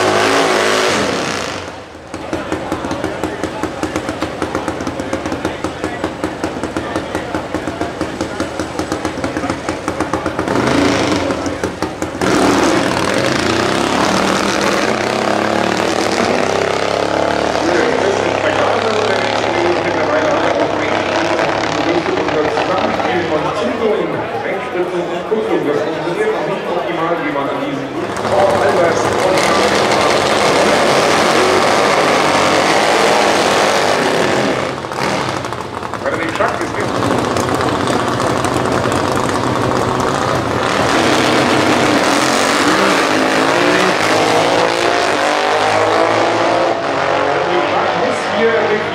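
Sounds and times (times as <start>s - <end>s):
drag racing motorcycle engines: 0.0s - 48.9s.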